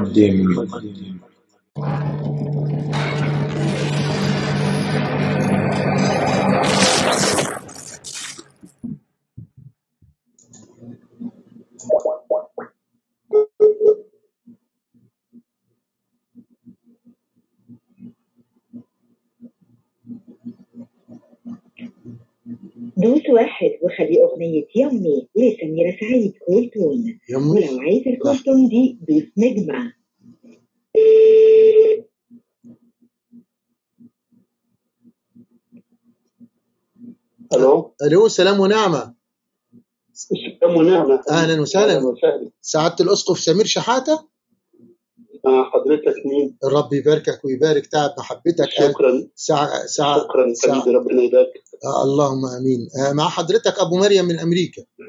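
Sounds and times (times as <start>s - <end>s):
low drone: 1.8s - 7.8s.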